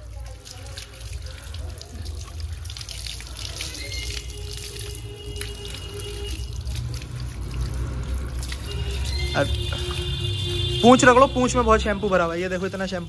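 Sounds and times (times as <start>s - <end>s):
hose water splashing on concrete: 0.0s - 13.0s.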